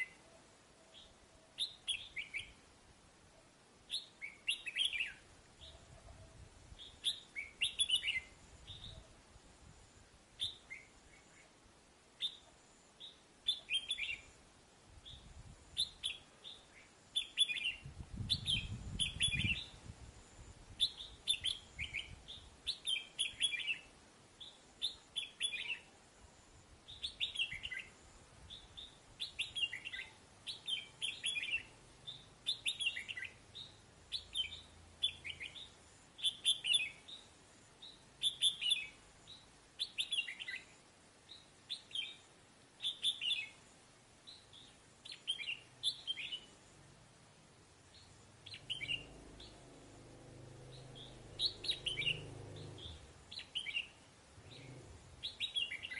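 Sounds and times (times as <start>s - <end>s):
bird chattering calls: 50.7s - 53.8s.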